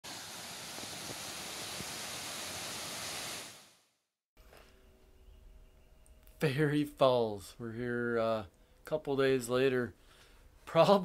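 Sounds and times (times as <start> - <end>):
small waterfall splashing on rocks: 0.0 - 3.8.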